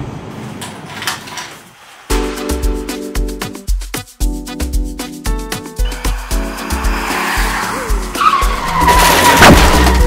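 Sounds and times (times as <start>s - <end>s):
music beat: 2.1s - 10.0s
car tyres screeching: 5.8s - 10.0s.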